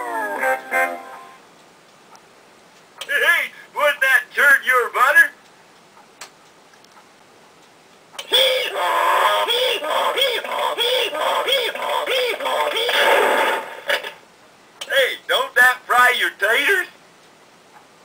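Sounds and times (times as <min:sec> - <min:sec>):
voice-like sound wavering in pitch: 0:08.2 - 0:13.6.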